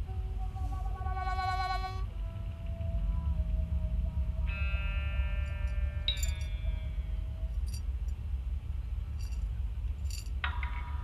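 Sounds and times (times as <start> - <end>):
ambient electronic music: 0.0 - 9.0.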